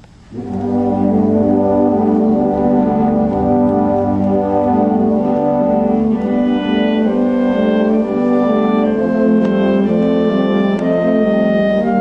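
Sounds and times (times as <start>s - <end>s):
symphonic band chord: 0.3s - 12.0s.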